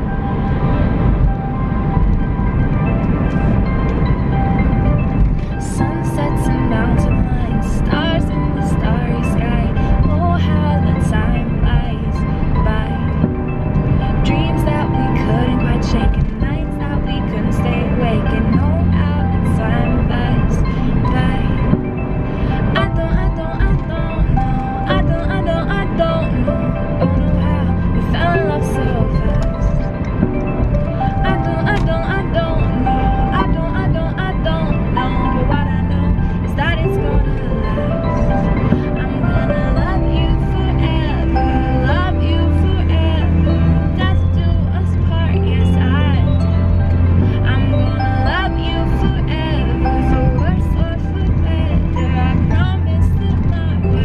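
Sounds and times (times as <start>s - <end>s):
backing music: 0.0s - 54.0s
woman singing: 5.3s - 13.3s, 14.0s - 30.4s, 31.0s - 54.0s.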